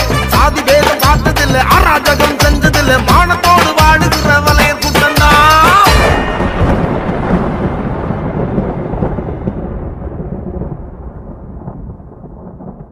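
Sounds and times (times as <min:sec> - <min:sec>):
thunder rumbling: 0:05.6 - 0:12.9.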